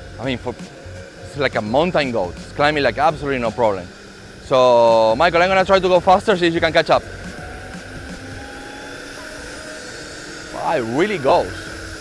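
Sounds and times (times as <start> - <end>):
electric motor whine: 0.0 - 12.0.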